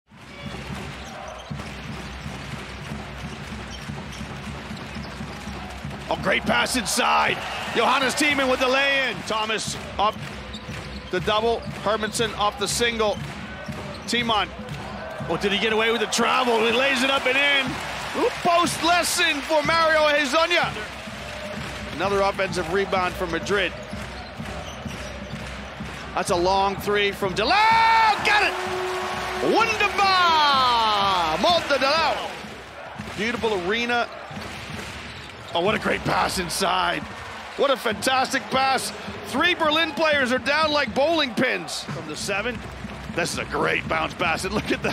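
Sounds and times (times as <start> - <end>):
crowd noise: 0.1 - 44.9.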